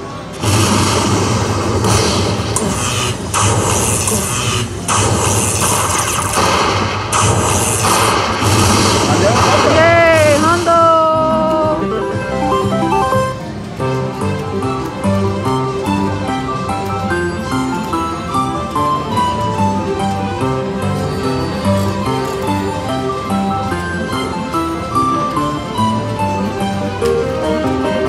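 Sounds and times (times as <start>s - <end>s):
crackling lightning effects: 0.3s - 10.9s
slot machine fanfare: 0.4s - 28.0s.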